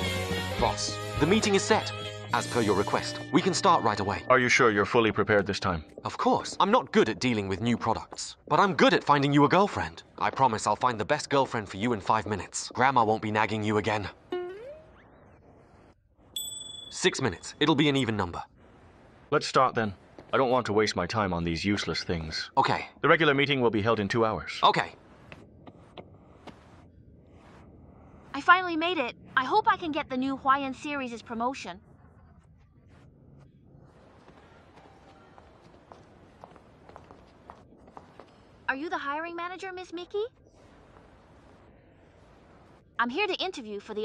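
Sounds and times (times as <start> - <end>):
comedy ding: 16.4 - 17.1
footsteps on hard floor: 34.0 - 38.5.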